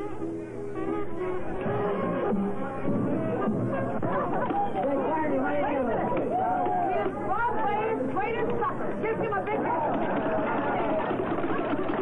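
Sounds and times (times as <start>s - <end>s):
voices chattering and calling: 0.8s - 12.0s.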